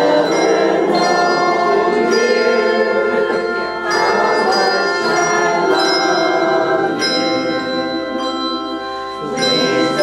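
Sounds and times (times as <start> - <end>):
handbell choir ringing chords: 0.0 - 10.0.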